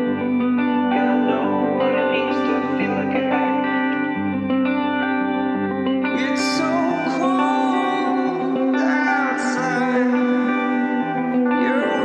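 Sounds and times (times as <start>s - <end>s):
guitar with echo effects: 0.0s - 12.0s.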